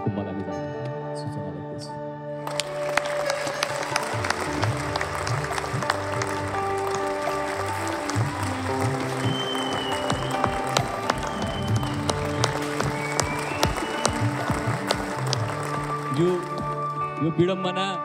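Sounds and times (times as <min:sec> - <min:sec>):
background music with held notes: 0:00.0 - 0:18.0
audience clapping: 0:02.4 - 0:17.3.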